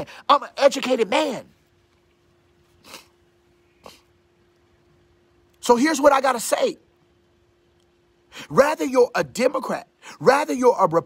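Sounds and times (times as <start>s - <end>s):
faint steady hum: 0.0s - 11.0s
brief sniff: 2.7s - 4.1s.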